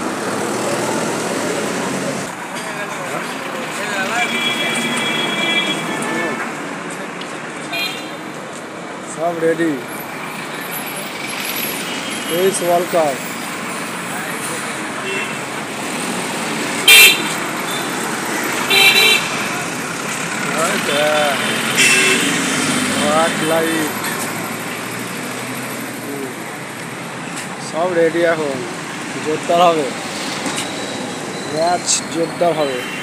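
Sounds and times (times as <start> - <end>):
outdoor background noise: 0.0 - 33.0
road traffic passing: 0.0 - 33.0.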